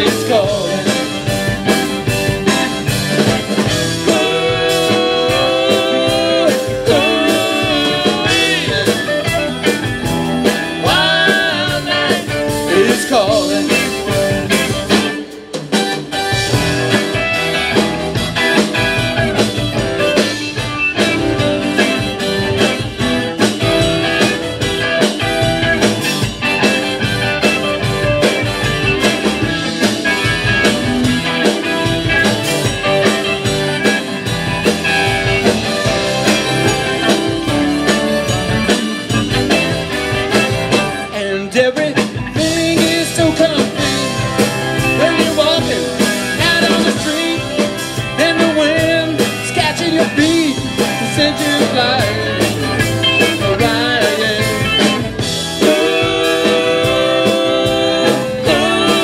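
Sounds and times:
electric guitar lead bending notes: 0.0s - 59.0s
live rock band playing: 0.0s - 59.0s.

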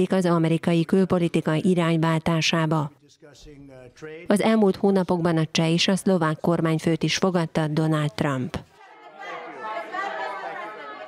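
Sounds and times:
many voices talking: 6.0s - 11.0s.

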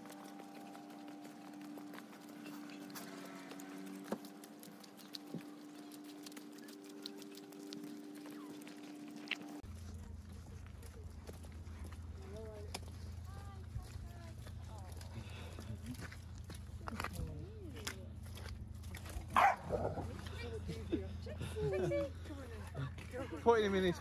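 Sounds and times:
dog barking: 19.3s - 20.1s.

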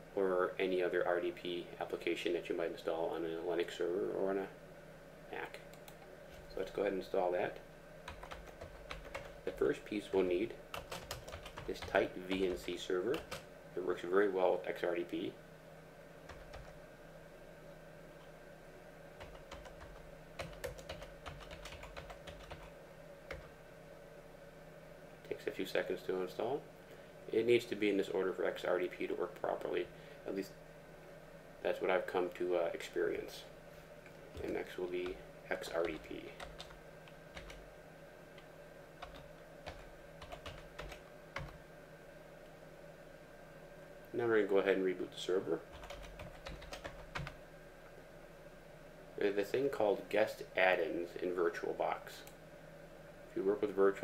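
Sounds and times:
faint steady hum: 0.0s - 54.0s
computer keyboard typing: 8.1s - 9.4s, 10.1s - 13.4s, 16.3s - 16.8s, 19.2s - 22.7s, 35.8s - 37.6s, 39.0s - 41.6s, 45.7s - 47.4s.

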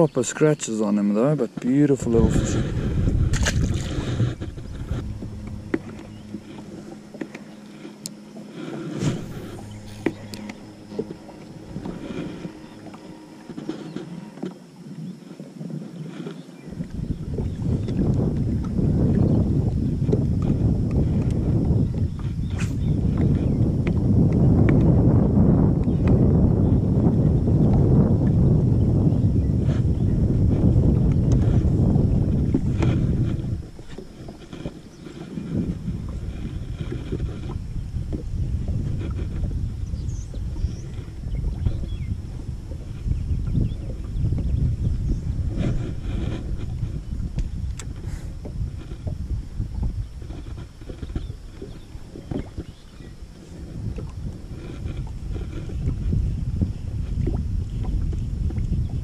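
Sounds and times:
water lapping against boat hull: 0.0s - 59.0s
wind rumbling on microphone: 0.0s - 59.0s.

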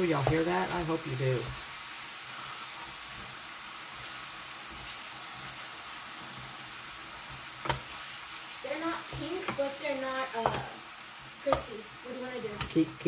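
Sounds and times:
meat sizzling in a skillet: 0.0s - 13.0s.

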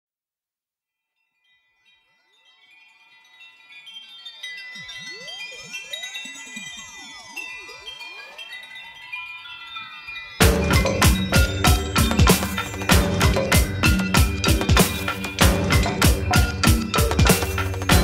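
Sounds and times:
chime-like tinkling notes: 1.0s - 18.0s.

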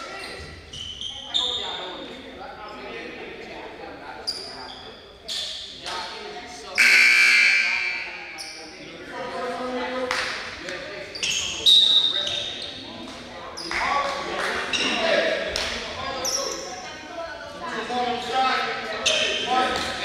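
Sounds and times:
voices echoing in gymnasium: 0.0s - 20.0s
loud buzzer tone: 6.8s - 8.2s.

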